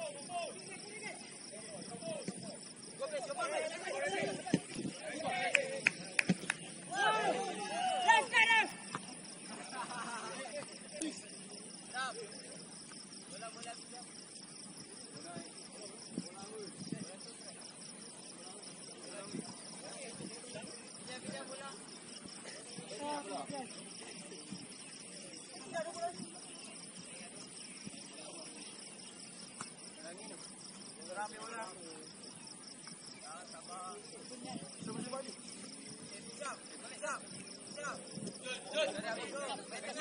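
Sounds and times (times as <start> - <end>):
distant shouting: 0.0 - 11.2
crickets chirping: 0.0 - 40.0.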